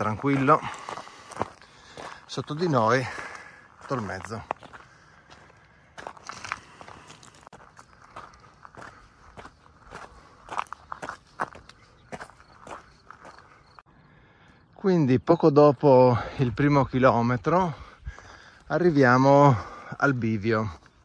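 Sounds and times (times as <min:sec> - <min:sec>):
footsteps crunching on gravel: 0:00.0 - 0:13.8, 0:16.2 - 0:21.0.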